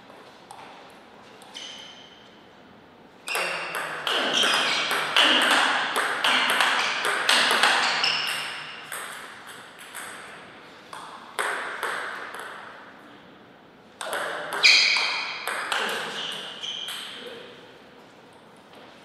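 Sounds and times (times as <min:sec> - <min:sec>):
ball bouncing on table: 0:03.3 - 0:10.3, 0:10.9 - 0:12.7, 0:14.0 - 0:17.2
table tennis ball hits: 0:03.3 - 0:12.8, 0:14.0 - 0:17.2.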